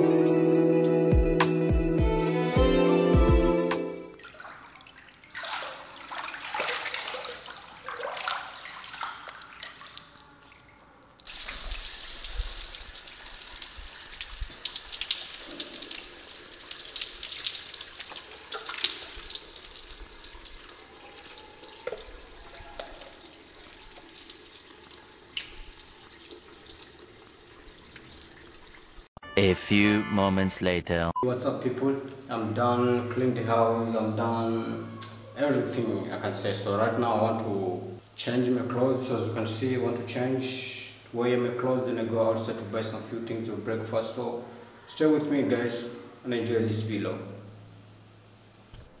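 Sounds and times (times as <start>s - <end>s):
water splashing and sloshing: 4.2s - 29.1s
shower pouring on a person: 11.2s - 29.0s.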